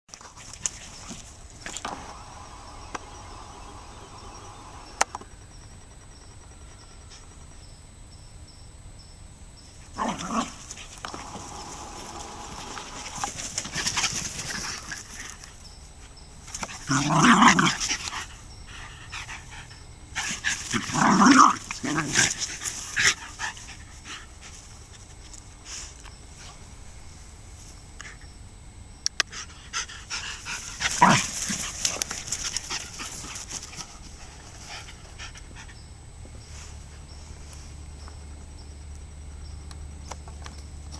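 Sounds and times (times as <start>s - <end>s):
dogs scuffling: 10.0s - 15.6s, 30.5s - 35.2s
dogs panting: 10.6s - 15.7s, 17.7s - 26.6s, 29.2s - 36.0s.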